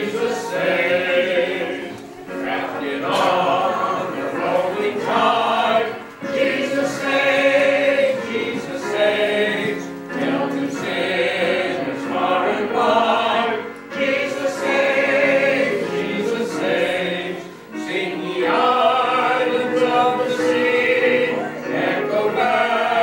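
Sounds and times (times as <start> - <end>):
group singing a hymn: 0.0 - 23.0.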